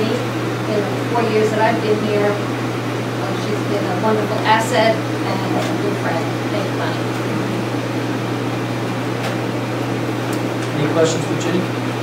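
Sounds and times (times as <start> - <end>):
room noise: 0.0 - 12.0
steady low hum: 0.0 - 12.0.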